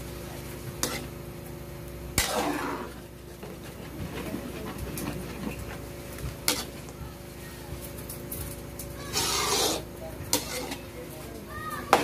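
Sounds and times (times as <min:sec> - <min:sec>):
ladle stirring thick stew: 0:09.0 - 0:10.9.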